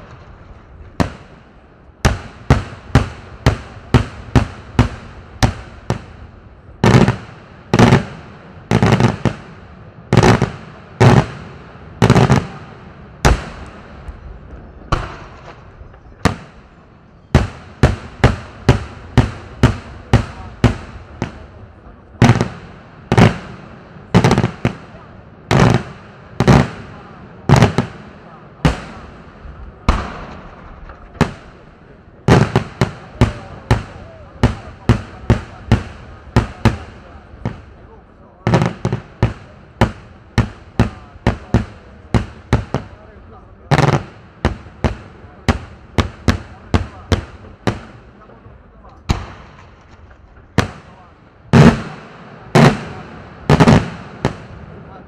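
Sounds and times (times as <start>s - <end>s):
firework shells bursting with echo: 17.4s - 48.3s, 48.9s - 55.0s.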